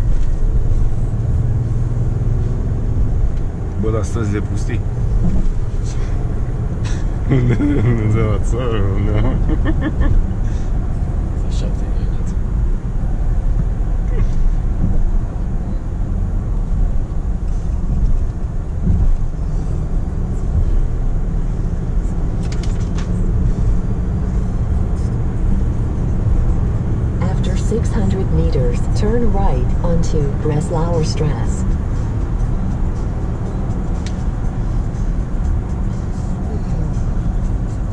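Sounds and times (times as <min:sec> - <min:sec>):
engine and road rumble in car cabin: 0:00.0 - 0:37.9.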